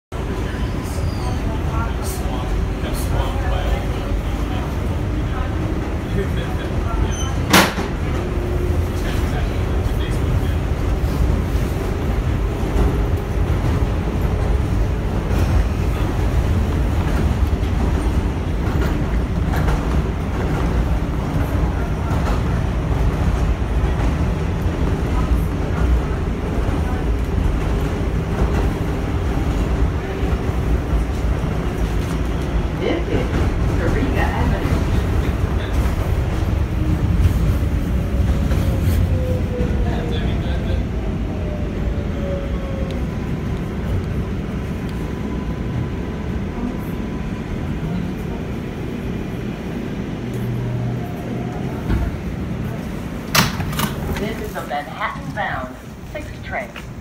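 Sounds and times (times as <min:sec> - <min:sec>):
subway wheels rumbling: 0:00.1 - 0:57.0.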